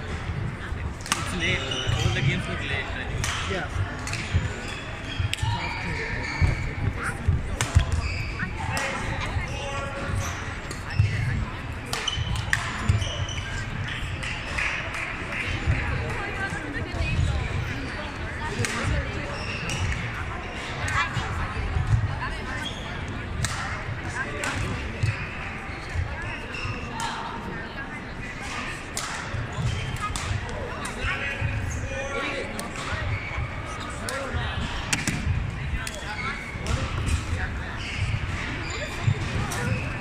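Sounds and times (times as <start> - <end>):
background chatter: 0.0 - 40.0
people talking: 0.0 - 40.0.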